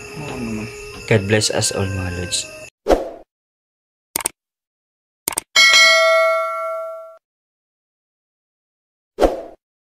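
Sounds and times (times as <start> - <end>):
quick double clicks: 4.2 - 4.4, 5.3 - 5.5
bright bell ding: 5.6 - 7.2.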